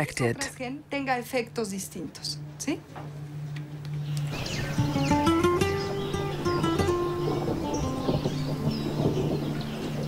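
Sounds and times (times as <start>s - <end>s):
low steady hum: 0.0s - 4.8s.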